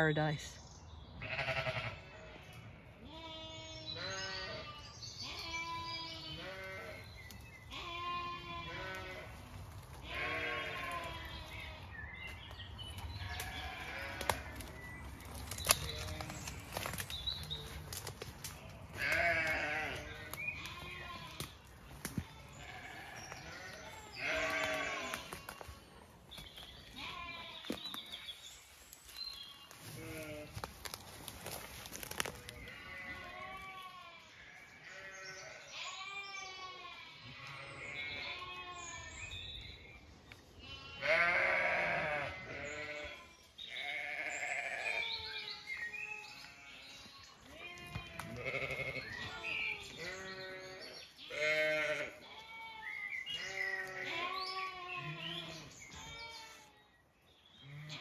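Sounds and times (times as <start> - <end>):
sheep bleating: 1.2 - 7.1, 7.7 - 11.8, 13.3 - 14.8, 18.6 - 21.5, 22.3 - 25.7, 26.9 - 27.8, 29.8 - 30.6, 32.3 - 39.2, 40.6 - 56.7.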